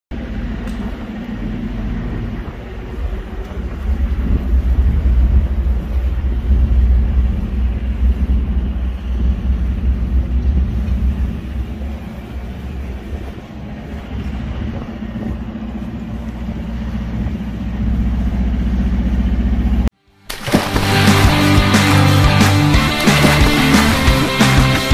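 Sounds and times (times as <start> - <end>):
engine droning hum: 0.1 - 24.9.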